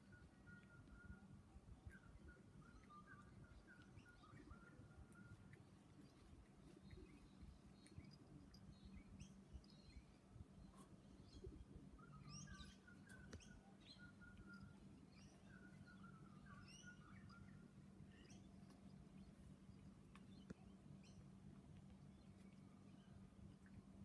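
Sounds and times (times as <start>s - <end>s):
distant bird song: 0.0s - 24.0s
faint bird chirps: 0.0s - 24.0s
low steady hum: 0.0s - 24.0s.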